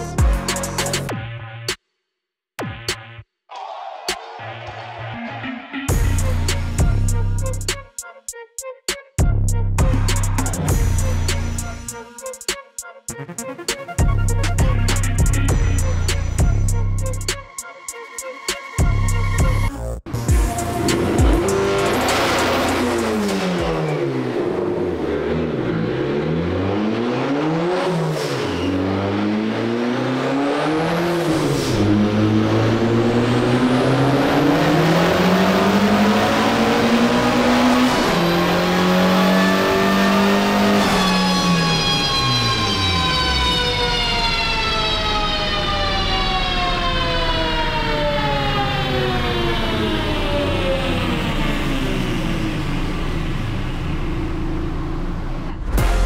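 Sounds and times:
car engine revving: 0:20.1 - 0:56.0.

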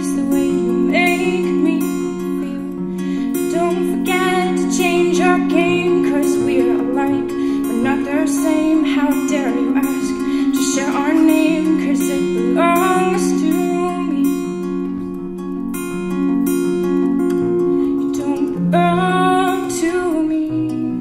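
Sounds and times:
woman singing: 0:00.0 - 0:15.0, 0:17.7 - 0:21.0
acoustic guitar plucking: 0:00.0 - 0:21.0.

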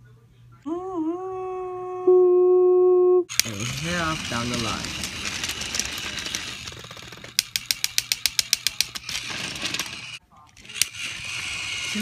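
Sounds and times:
rapid regular clicking: 0:03.3 - 0:12.0
toy train motor whirring: 0:03.3 - 0:12.0.

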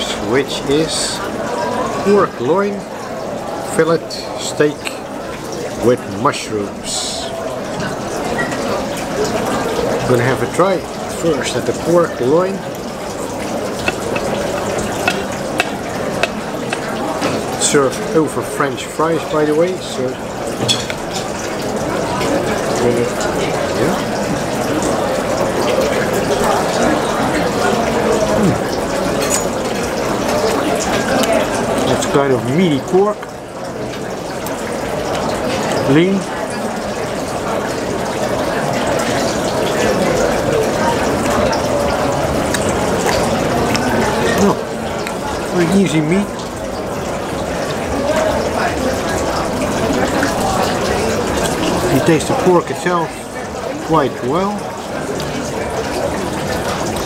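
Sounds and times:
knife and fork cutting on plate: 0:13.8 - 0:16.9
metal clicking on plate: 0:13.8 - 0:17.0.

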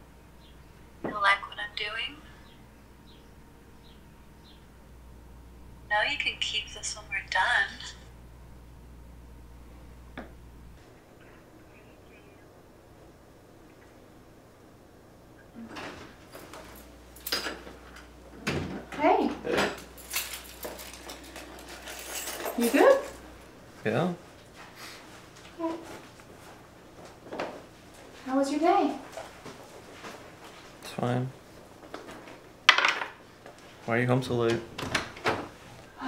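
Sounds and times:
faint low hum: 0:00.0 - 0:32.5.

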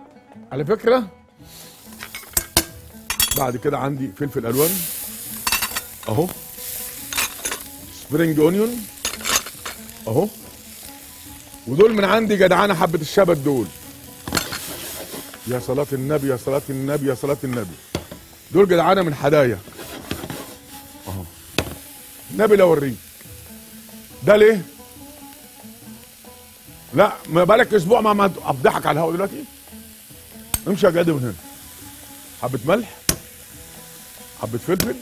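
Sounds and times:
quiet background music: 0:00.0 - 0:35.0
peppers sizzling in a frying pan: 0:01.4 - 0:35.0
glass bowls clinking: 0:02.0 - 0:03.7, 0:05.4 - 0:06.2, 0:07.1 - 0:07.6, 0:09.0 - 0:09.8.

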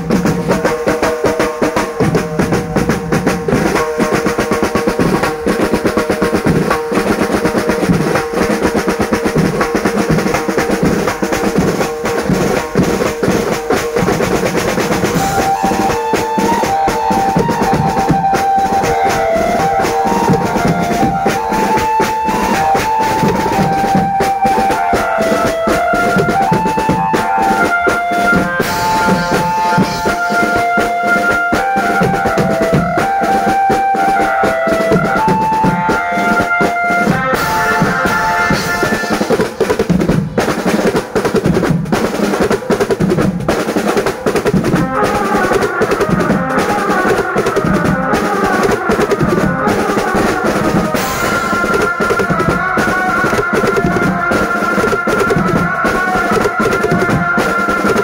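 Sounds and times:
high stepping melody: 0:00.0 - 0:41.0, 0:44.5 - 0:58.0
fast drum rolls: 0:00.0 - 0:58.0.

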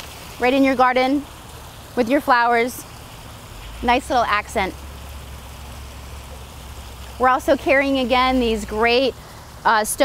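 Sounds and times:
constant low rumble: 0:00.0 - 0:10.0
water trickling and splashing: 0:00.0 - 0:10.0.

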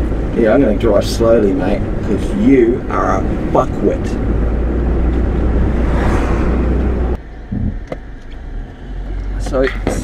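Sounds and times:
car road and engine rumble: 0:00.0 - 0:10.0.

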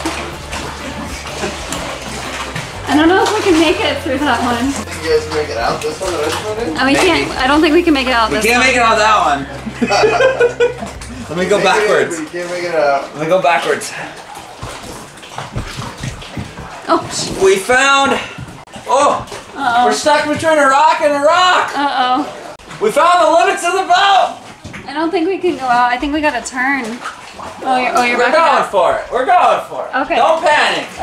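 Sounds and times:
steady low hum: 0:00.0 - 0:12.4
water lapping against rocks: 0:00.0 - 0:31.0.

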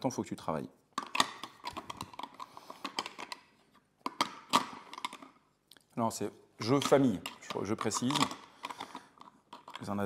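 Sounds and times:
plastic pieces clicking: 0:01.0 - 0:05.4, 0:06.6 - 0:10.0.

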